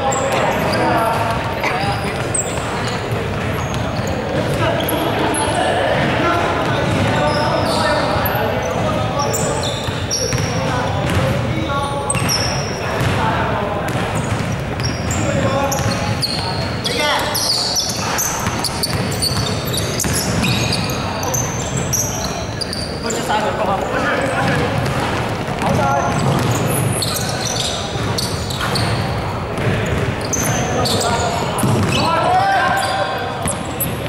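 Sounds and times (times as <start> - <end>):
players' voices echoing: 0.0 - 34.0
sneakers squeaking: 0.0 - 34.0
basketball bouncing: 0.5 - 5.0, 5.9 - 7.8, 8.6 - 16.7, 17.9 - 22.8, 23.6 - 34.0.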